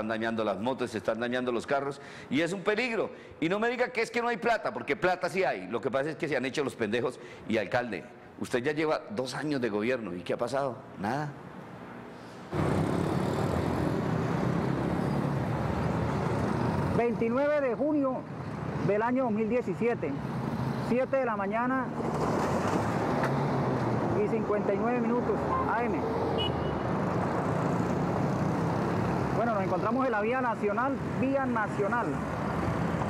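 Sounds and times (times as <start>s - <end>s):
tyre and road noise: 12.4s - 19.0s, 19.6s - 33.0s
pickup truck passing: 12.5s - 17.2s, 21.9s - 33.0s
motorcycle passing: 12.5s - 18.8s, 21.7s - 33.0s.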